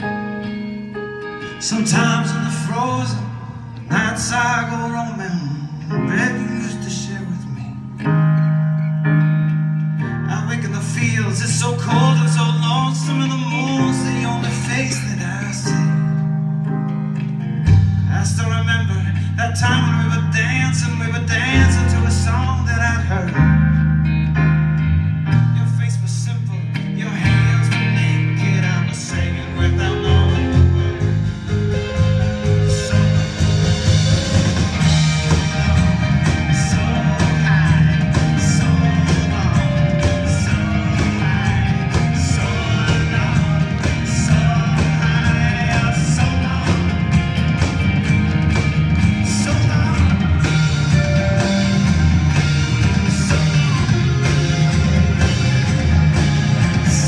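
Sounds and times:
live band guitars and keyboard: 0.0s - 57.0s.

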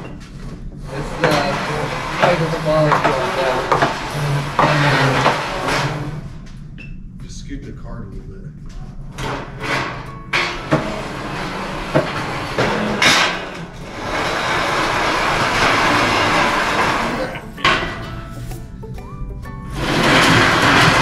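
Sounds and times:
metal clanks and knocks: 0.0s - 6.9s, 8.7s - 21.0s
metal shelf scraping on tile: 0.8s - 6.3s, 9.2s - 18.6s, 19.7s - 21.0s.

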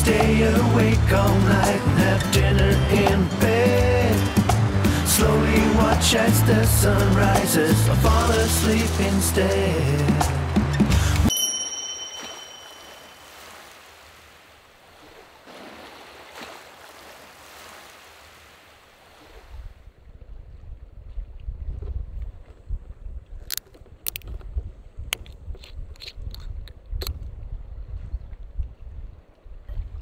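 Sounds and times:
high chime: 11.3s - 13.7s
wind buffeting microphone: 19.4s - 30.0s.

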